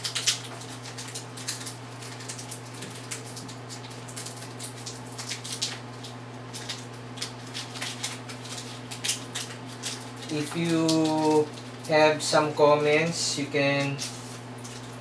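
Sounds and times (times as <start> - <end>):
card packs crinkling: 0.0 - 15.0
low electrical hum: 0.0 - 15.0.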